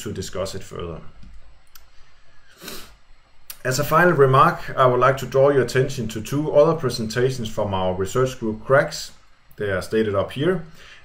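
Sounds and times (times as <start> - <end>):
faint clicks: 1.2 - 2.0
short breath-like hiss: 1.8 - 3.0, 10.7 - 11.0.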